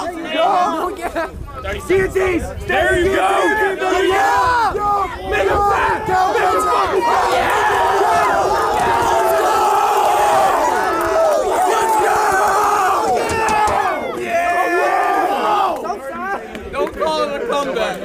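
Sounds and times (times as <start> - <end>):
crowd yelling and cheering: 0.0 - 18.0.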